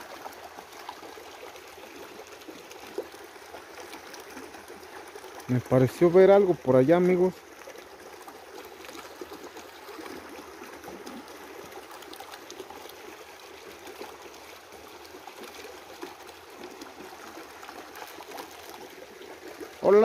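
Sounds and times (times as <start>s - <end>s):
creek trickling over stones: 0.0s - 20.0s.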